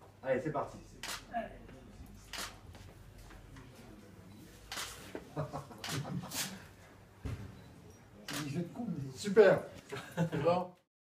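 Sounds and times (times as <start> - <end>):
camera shutter clicking: 1.0 - 1.3, 2.3 - 2.6, 4.7 - 5.0, 8.3 - 8.5.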